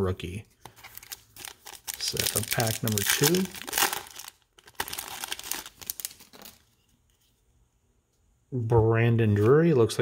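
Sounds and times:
foil wrapper crinkling: 0.7s - 6.7s.

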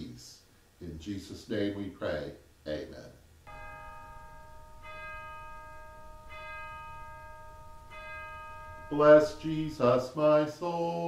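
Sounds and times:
bell ringing: 3.5s - 10.3s.

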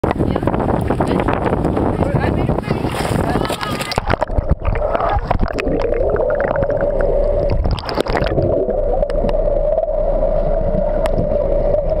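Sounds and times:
steady underwater hum: 2.3s - 12.0s
underwater bubbling and gurgling: 2.6s - 12.0s.

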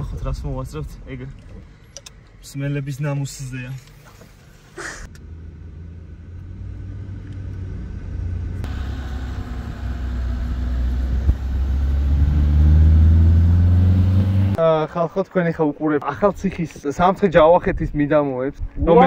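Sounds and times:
moving car rumble: 0.0s - 14.6s.

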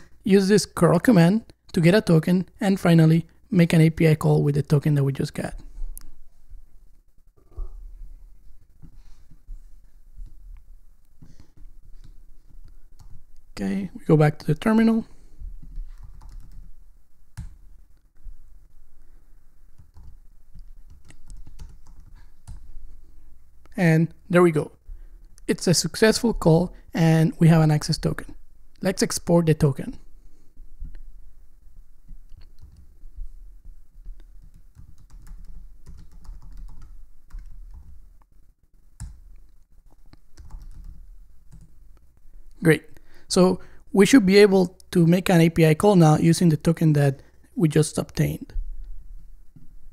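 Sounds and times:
computer keyboard typing: 12.0s - 13.2s, 15.6s - 16.7s, 19.8s - 22.7s, 32.4s - 32.9s, 34.0s - 38.0s, 39.0s - 41.7s.

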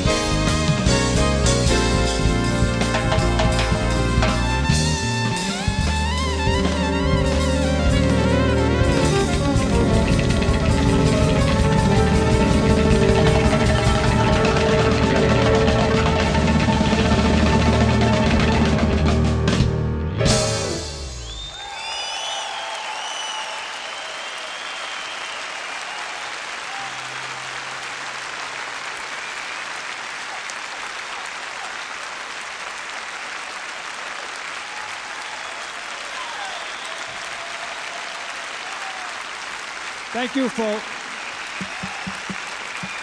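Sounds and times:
jazz fusion band chord: 0.0s - 21.3s
audience applause: 5.6s - 18.8s, 21.2s - 43.0s
shrill whistles: 21.2s - 25.6s, 35.2s - 37.3s, 41.5s - 43.0s.

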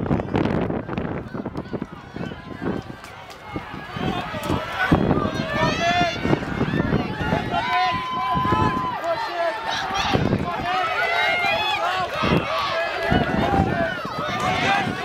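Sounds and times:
spectators shouting and cheering: 0.0s - 15.0s.

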